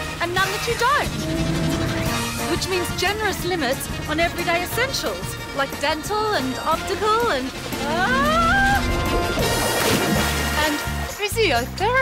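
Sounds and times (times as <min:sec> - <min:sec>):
light background music: 0:00.0 - 0:12.0
crash splash sound effect: 0:08.8 - 0:11.0.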